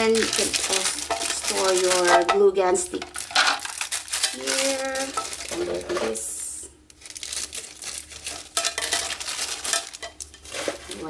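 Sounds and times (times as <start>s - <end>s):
scissors snipping plastic bag: 0.0s - 2.3s, 3.1s - 5.9s
plastic crinkling: 0.0s - 6.2s, 6.9s - 11.0s.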